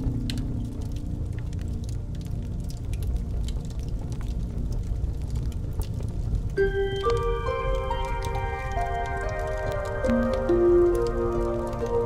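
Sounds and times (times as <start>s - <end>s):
fireplace crackling: 0.0s - 12.0s.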